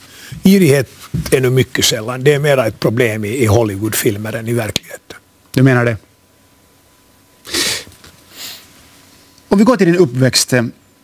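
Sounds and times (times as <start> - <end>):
man puffing air through nose: 7.5 - 8.7.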